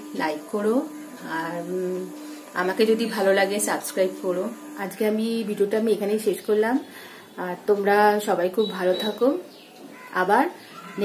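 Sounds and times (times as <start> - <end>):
woman speaking: 0.2 - 9.5, 10.1 - 11.0.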